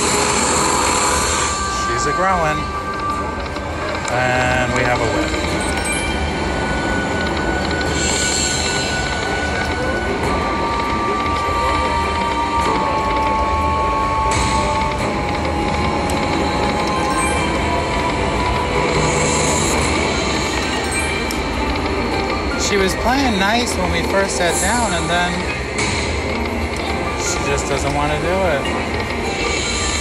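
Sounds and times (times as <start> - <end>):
slot machine tones and music: 0.0 - 30.0
slot machine din: 4.0 - 7.1, 15.8 - 30.0.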